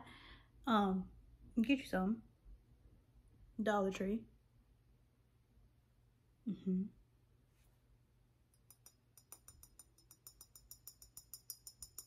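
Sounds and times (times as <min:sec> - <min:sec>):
fingernail tapping glass bottle: 0:08.6 - 0:12.0.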